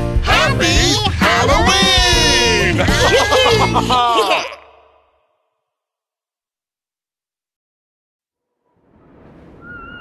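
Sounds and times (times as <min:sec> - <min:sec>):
children laughing: 0:02.4 - 0:04.8.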